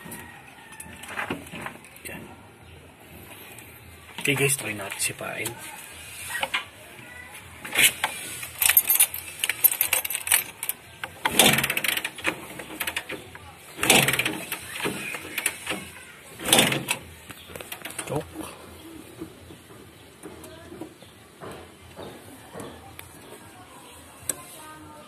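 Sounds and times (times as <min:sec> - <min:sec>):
motorcycle engine kick-start cranking: 0:07.7 - 0:18.2.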